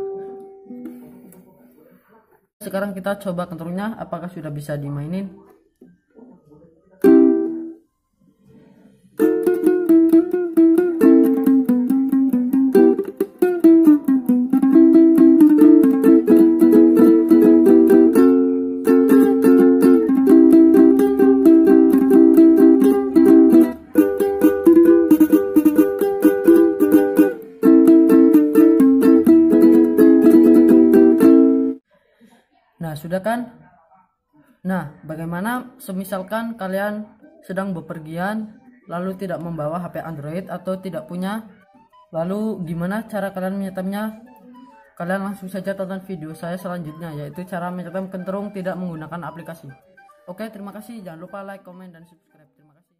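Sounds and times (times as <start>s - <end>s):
small ukulele strummed chords: 0.0s - 1.2s, 7.0s - 7.8s, 9.2s - 31.8s.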